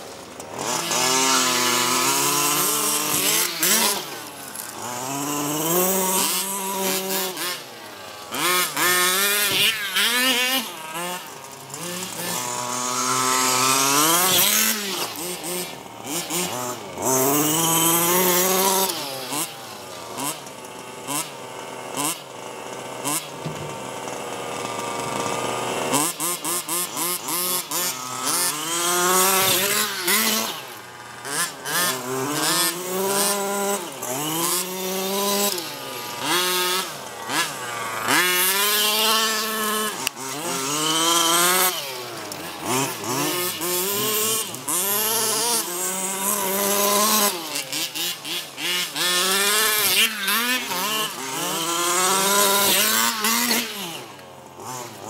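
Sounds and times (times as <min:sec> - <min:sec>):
small two-stroke engine revving: 0:00.0 - 0:55.0.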